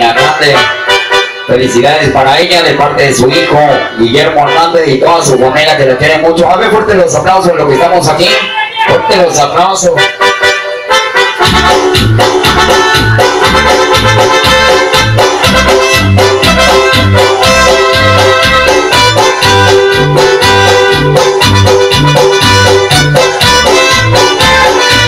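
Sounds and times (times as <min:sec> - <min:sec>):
keyboard melody: 0:00.0 - 0:25.0
bass and drums accompaniment: 0:10.0 - 0:25.0.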